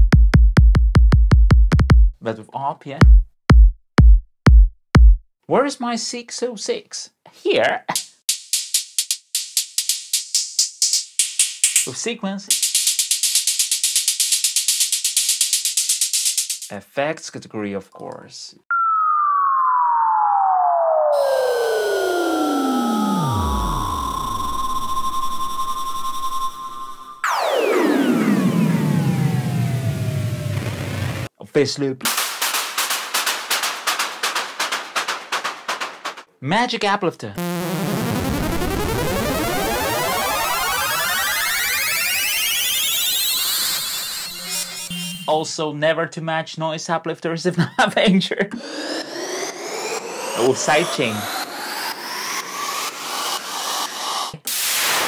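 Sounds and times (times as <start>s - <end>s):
drum machine hi-hat pattern: 0.0s - 2.2s, 3.0s - 5.2s, 7.9s - 16.7s, 32.1s - 36.3s, 37.4s - 41.0s, 49.4s - 54.4s
rapid hissy synth noise hits: 49.6s - 55.0s.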